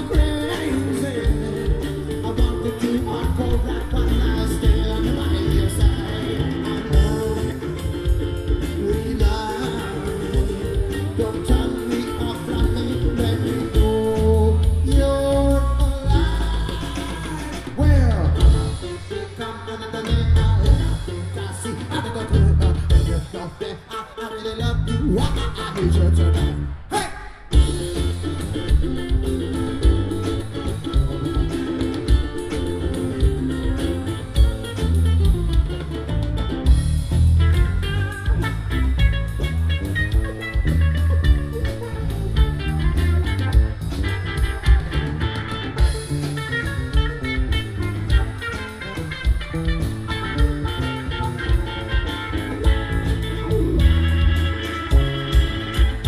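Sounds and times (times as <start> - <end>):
live band playing instrumental: 0.0 - 56.0.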